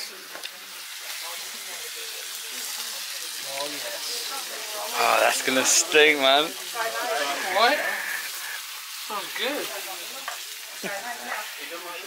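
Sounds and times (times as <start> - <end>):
faint voices laughing: 6.9 - 8.8, 10.6 - 11.8.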